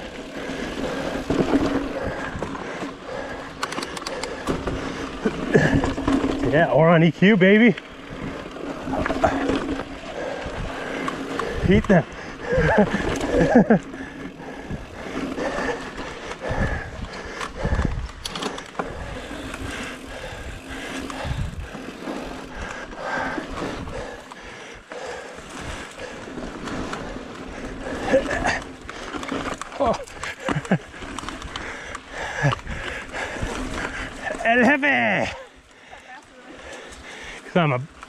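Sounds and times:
bike tyres crunching over rock: 0:00.0 - 0:03.6, 0:04.2 - 0:35.2
bike knocking and rattling: 0:00.0 - 0:35.4
wind noise on microphone: 0:16.4 - 0:21.8, 0:32.4 - 0:34.1.

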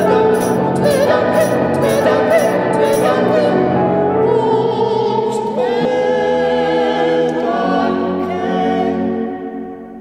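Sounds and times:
choir singing held chords: 0:00.0 - 0:10.0.

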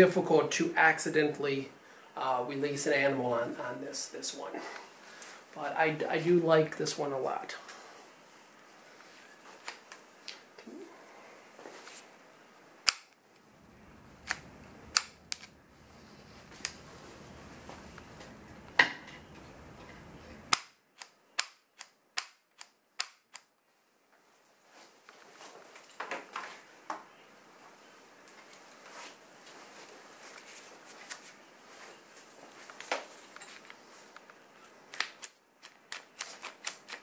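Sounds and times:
sharp metallic clicks: 0:12.8 - 0:13.2, 0:14.2 - 0:15.6, 0:20.5 - 0:23.5.

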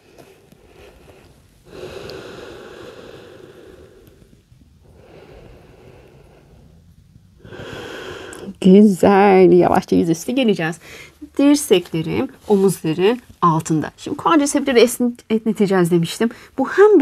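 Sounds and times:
woman breathing deeply: 0:00.0 - 0:08.6, 0:10.8 - 0:11.2.

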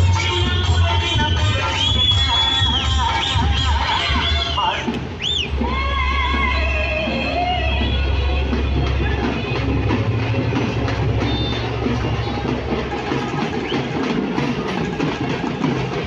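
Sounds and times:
crowd voices: 0:00.0 - 0:16.0
procession music with drums: 0:00.0 - 0:16.0.

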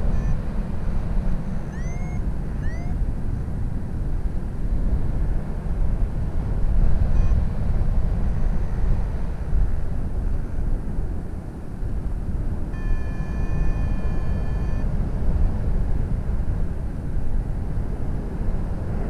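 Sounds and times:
steady high tone: 0:00.0 - 0:00.4, 0:01.6 - 0:03.0, 0:12.7 - 0:14.9
wind rushing over microphone: 0:00.0 - 0:19.0.

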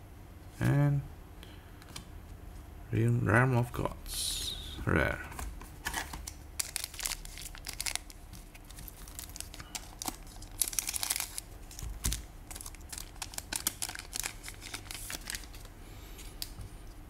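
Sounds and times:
foil pack crinkling: 0:05.8 - 0:15.7.

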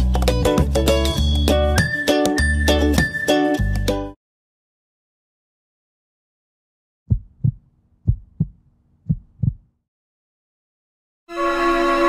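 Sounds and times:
heartbeat thumps: 0:07.1 - 0:09.7.

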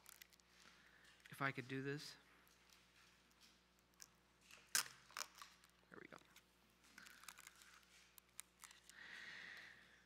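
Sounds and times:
plastic film crinkling: 0:00.0 - 0:01.4, 0:02.4 - 0:09.0.

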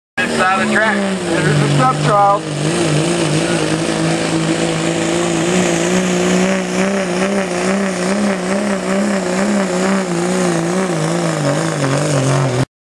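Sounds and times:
diesel truck engine revving: 0:00.2 - 0:12.7.

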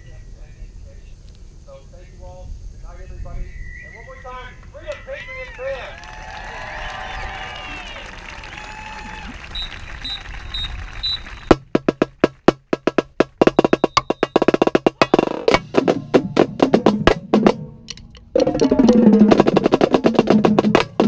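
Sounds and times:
voices: 0:00.0 - 0:11.3
marching snare drums: 0:11.0 - 0:17.8, 0:18.4 - 0:21.0
short high beeps: 0:13.6 - 0:14.4.

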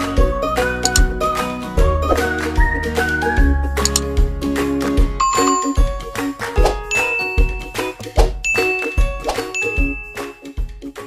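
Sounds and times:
background music with beat: 0:00.0 - 0:11.0
bell-like ding effects: 0:05.2 - 0:10.5.

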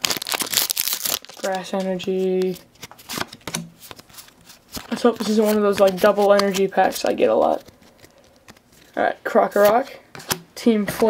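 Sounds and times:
trading cards clicking and rustling: 0:00.1 - 0:10.4.

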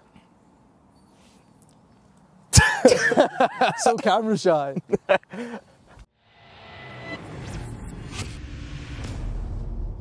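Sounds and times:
swoosh: 0:06.2 - 0:10.0
low rumble: 0:06.3 - 0:10.0.

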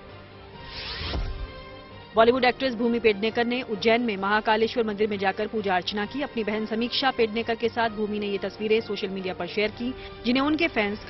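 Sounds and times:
whoosh: 0:00.6 - 0:01.8.

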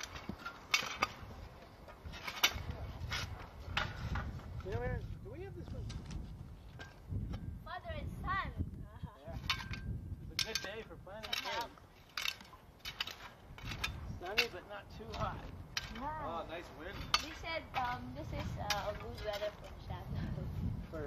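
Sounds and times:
metal shovels scraping soil: 0:00.0 - 0:04.7, 0:09.4 - 0:19.9.

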